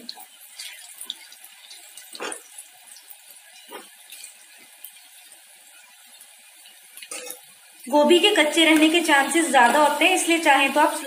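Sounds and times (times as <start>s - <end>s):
food deep-frying in oil: 0.0s - 11.0s.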